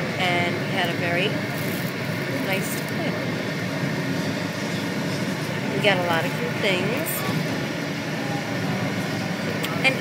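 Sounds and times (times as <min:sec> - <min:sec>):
vehicle rumble from inside cabin: 0:00.0 - 0:10.0.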